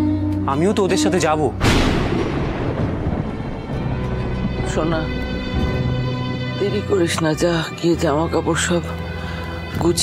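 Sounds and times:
loud boom hit with ringing tail: 1.6s - 3.7s.

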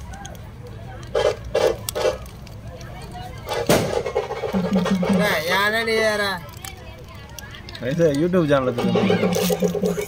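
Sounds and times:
street crowd chatter: 0.0s - 10.0s.

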